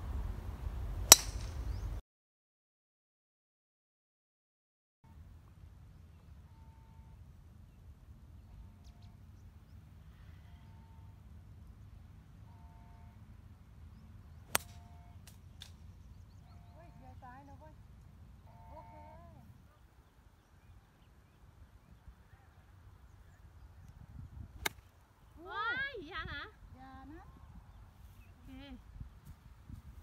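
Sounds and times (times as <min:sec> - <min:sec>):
golf club striking ball: 0:01.0 - 0:01.8, 0:14.5 - 0:14.8, 0:24.6 - 0:24.9
wind on microphone: 0:23.8 - 0:24.6, 0:28.8 - 0:30.0.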